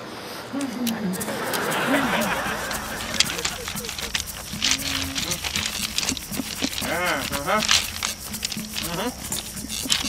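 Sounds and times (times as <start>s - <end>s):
person making wordless sounds: 0.5s - 10.0s
background music: 1.1s - 10.0s.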